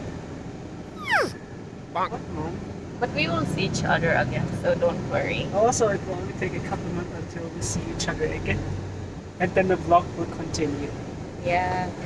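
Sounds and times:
short whimper: 1.0 - 1.4.

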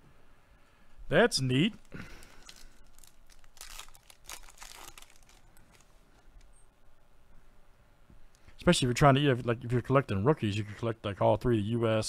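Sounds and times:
plastic wrapper tearing and crinkling: 1.8 - 6.5.

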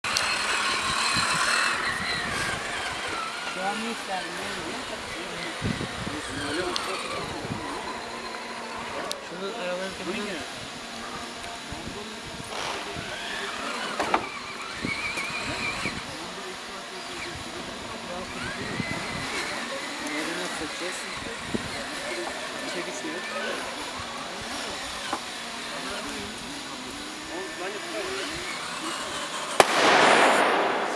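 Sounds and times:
electric motor whining: 0.0 - 29.6
voices chatting: 0.0 - 30.9
firecracker bang: 29.6 - 30.9
loud rushing noise: 29.6 - 30.9.

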